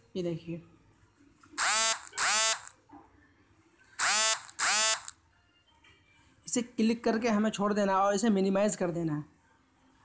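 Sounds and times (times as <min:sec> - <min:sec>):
smartphone vibrating buzz: 0:01.6 - 0:02.8, 0:04.0 - 0:05.2.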